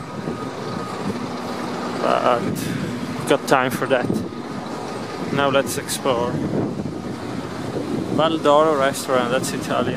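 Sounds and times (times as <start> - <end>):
vehicle engine humming: 0.0 - 9.9.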